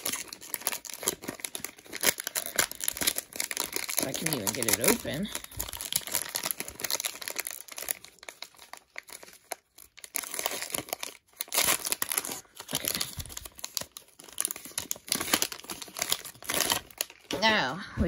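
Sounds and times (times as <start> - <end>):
plastic wrapper crinkling and tearing: 0.0 - 17.4.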